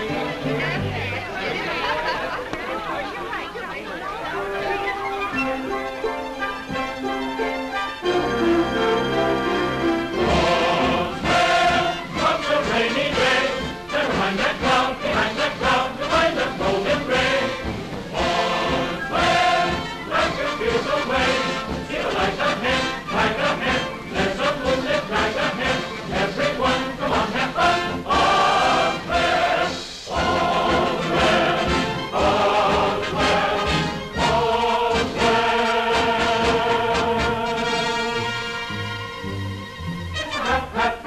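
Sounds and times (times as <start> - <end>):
orchestral film score: 4.2 - 41.0
choir singing: 8.0 - 38.6, 40.2 - 41.0.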